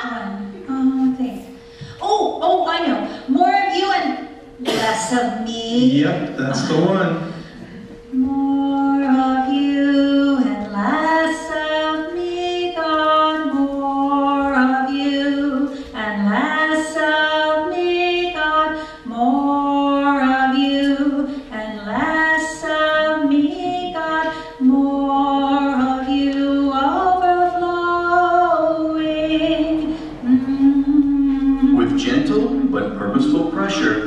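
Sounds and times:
woman singing slow song: 7.8s - 32.8s.

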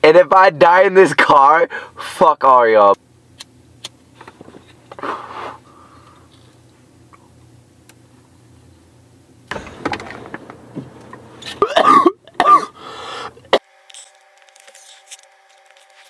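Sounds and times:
faint steady hum: 0.0s - 16.0s
person coughing: 11.5s - 13.6s.

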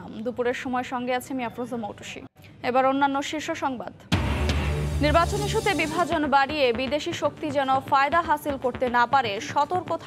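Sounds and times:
voice-over speaking: 5.0s - 6.3s.

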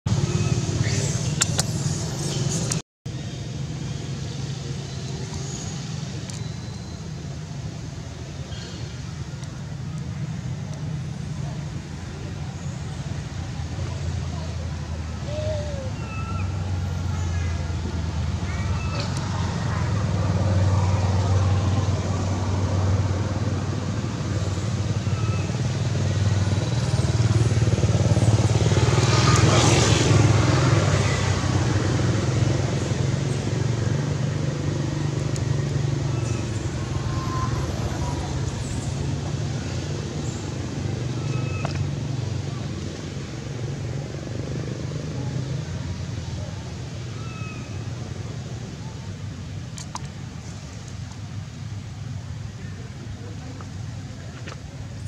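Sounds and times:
vehicle engine drone: 0.1s - 55.0s.

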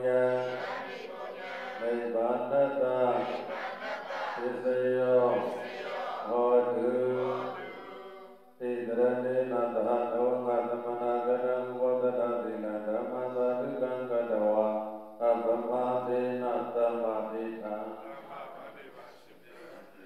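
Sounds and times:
voices chanting a prayer: 0.0s - 20.0s.

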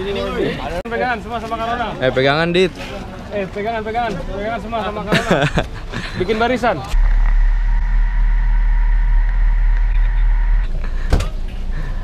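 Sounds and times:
car engine rumbling: 5.6s - 12.0s.

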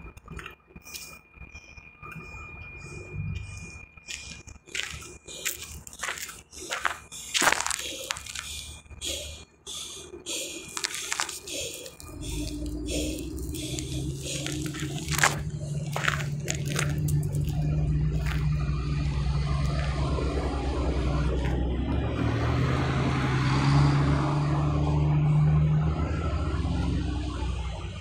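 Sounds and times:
engine droning: 0.0s - 28.0s.

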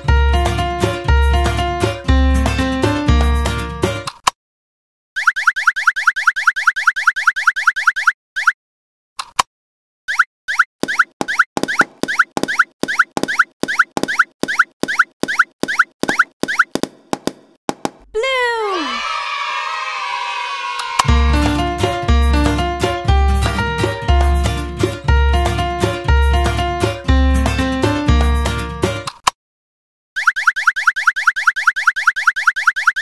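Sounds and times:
falling glide into shimmering tone: 18.8s - 21.1s.

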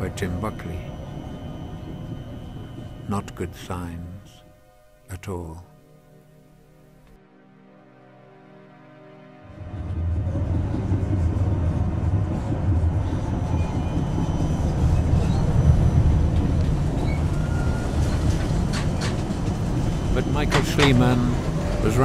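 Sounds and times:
tram rumbling: 0.0s - 5.6s, 9.5s - 22.0s.

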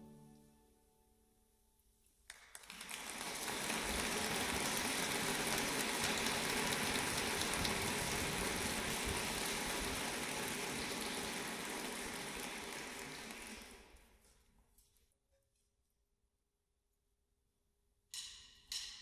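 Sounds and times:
audience applauding: 2.3s - 14.1s.

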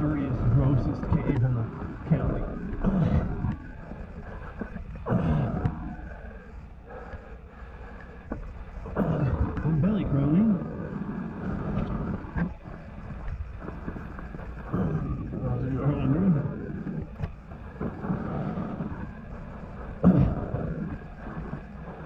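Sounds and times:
man's wordless voice sounds: 0.0s - 3.5s, 9.0s - 11.0s, 14.8s - 16.9s.

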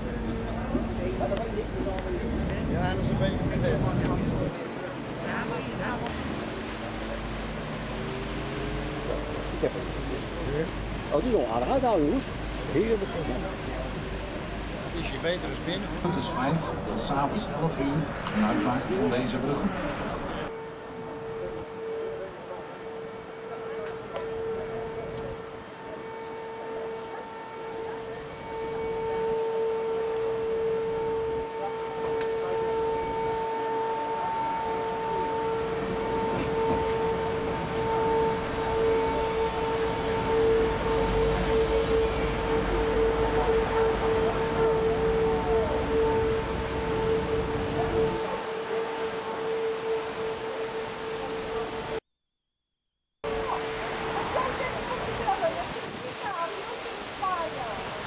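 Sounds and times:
boat engine whine: 0.0s - 52.0s, 53.2s - 58.0s
hull rushing through water: 0.0s - 52.0s, 53.2s - 58.0s.

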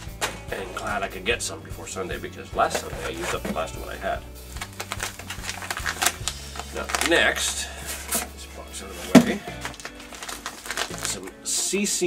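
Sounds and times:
packaging clicks taps and rustles: 4.5s - 8.2s, 9.1s - 12.0s.

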